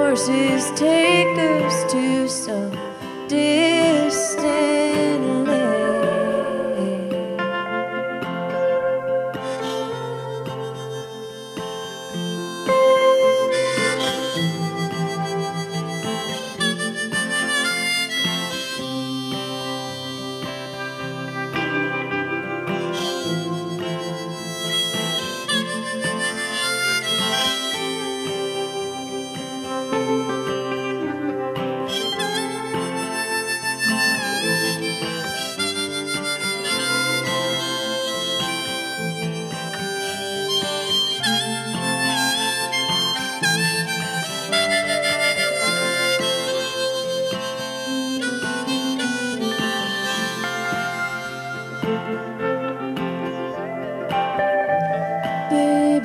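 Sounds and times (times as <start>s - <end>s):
country-folk band with guitar: 0.0s - 56.0s
harmonica solo: 0.0s - 56.0s.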